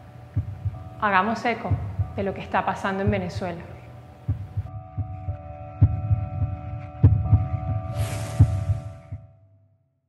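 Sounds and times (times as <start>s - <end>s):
heartbeat-like thuds: 0.3s - 0.8s, 1.7s - 2.3s, 3.0s - 3.4s, 4.3s - 9.3s
humming drone: 4.4s - 9.2s.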